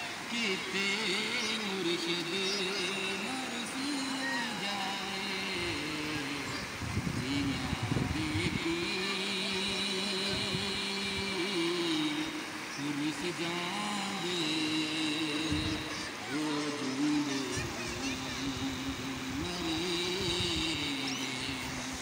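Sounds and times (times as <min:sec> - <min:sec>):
man singing unaccompanied: 0:00.0 - 0:22.0
river rushing: 0:00.0 - 0:22.0.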